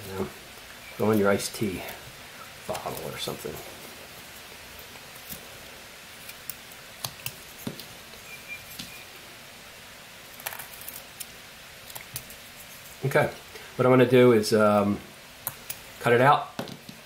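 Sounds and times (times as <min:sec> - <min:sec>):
faint steady hiss: 0:00.0 - 0:17.0.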